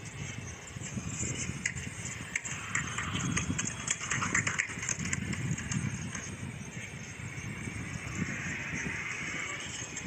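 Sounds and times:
scattered clicks: 0.8s - 6.4s.

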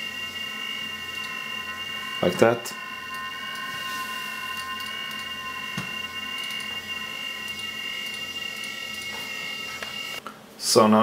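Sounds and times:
steady electronic chord tone: 0.0s - 10.2s.

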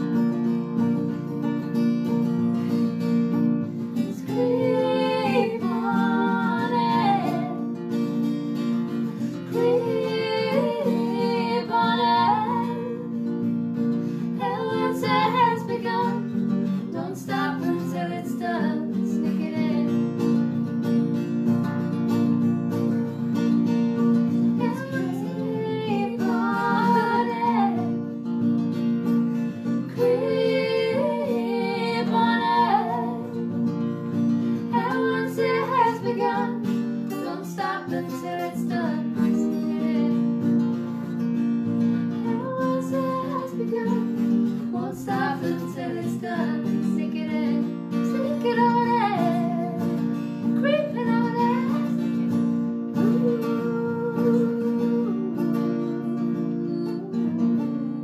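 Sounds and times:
acoustic guitar strumming: 0.0s - 58.0s
women singing: 3.8s - 8.2s, 9.0s - 20.4s, 24.4s - 28.2s, 29.7s - 33.8s, 34.4s - 40.8s, 42.1s - 58.0s.

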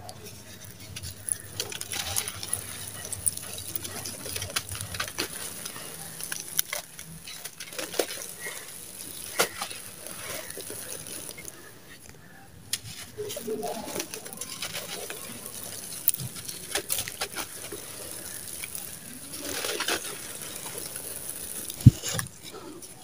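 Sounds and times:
grit pattering down: 0.0s - 23.0s
sand-cement lumps crunching: 0.2s - 23.0s.

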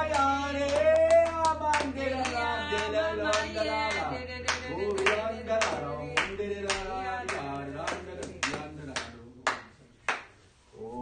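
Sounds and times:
sharp hand claps: 0.0s - 10.4s.

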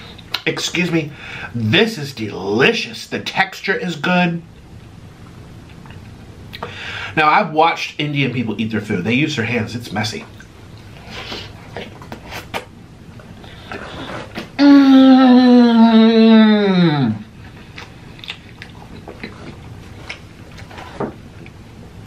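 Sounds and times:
man chewing food: 5.1s - 6.7s, 10.3s - 14.6s, 17.3s - 22.0s
man humming mmm: 14.6s - 17.3s.

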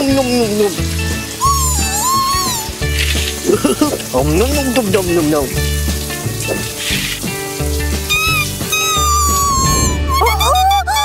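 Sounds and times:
cartoon background music: 0.0s - 11.0s
shower water running: 0.0s - 11.0s.

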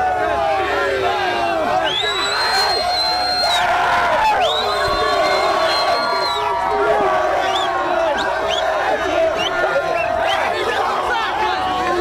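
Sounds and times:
crowd of men shouting and cheering: 0.0s - 12.0s
high whistle-like tone: 1.9s - 3.6s, 4.4s - 6.5s.

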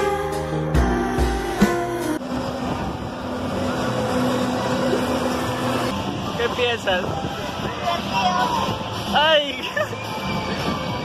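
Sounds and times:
wind buffeting microphone: 10.1s - 11.0s.

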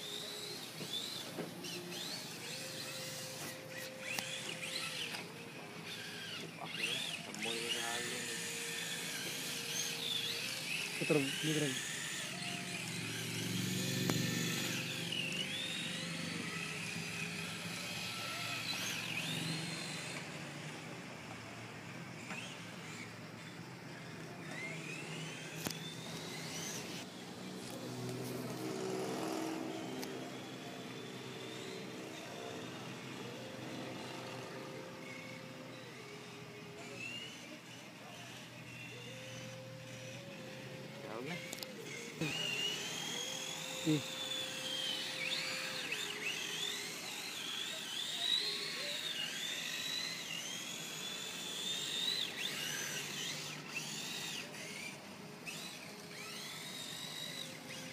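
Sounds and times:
toy car motor whining: 0.0s - 57.9s.

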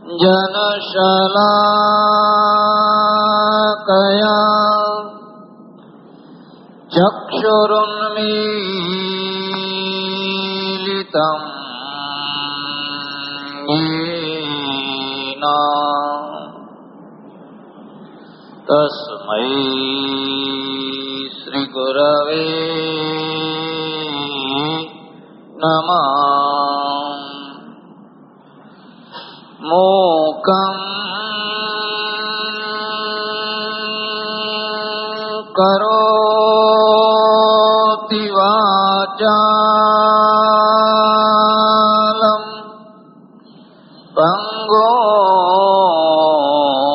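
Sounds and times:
person chanting in long held notes: 0.0s - 5.7s, 6.6s - 16.8s, 18.6s - 27.8s, 28.8s - 46.9s.

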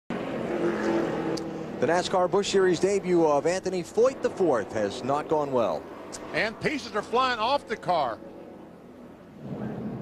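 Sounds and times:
race car engines running: 0.1s - 10.0s
commentator speaking: 1.8s - 8.2s.

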